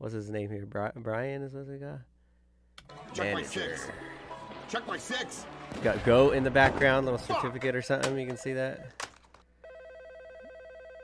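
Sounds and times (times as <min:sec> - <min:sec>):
telephone ringing: 0:08.2 - 0:11.0.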